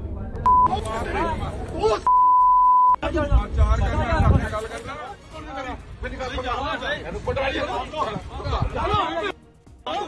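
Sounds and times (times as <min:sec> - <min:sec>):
censor bleep: 0:00.4 - 0:00.7, 0:02.1 - 0:03.0
men talking: 0:00.5 - 0:02.2, 0:03.0 - 0:10.0.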